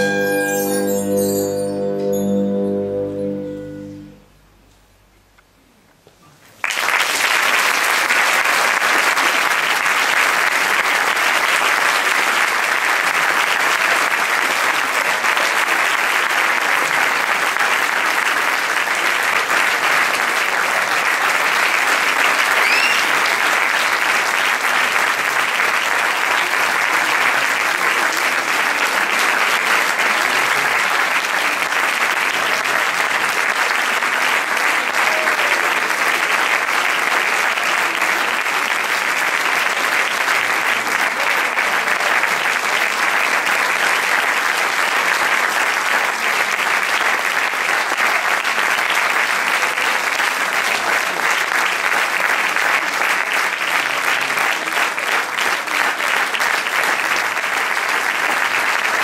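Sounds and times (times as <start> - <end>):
audience applauding: 6.6 - 59.0
high whistle: 22.6 - 23.2.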